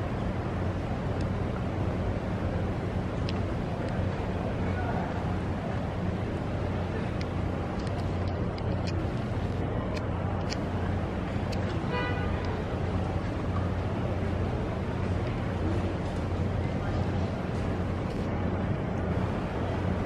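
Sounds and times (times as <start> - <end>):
traffic rumble: 0.0 - 20.0.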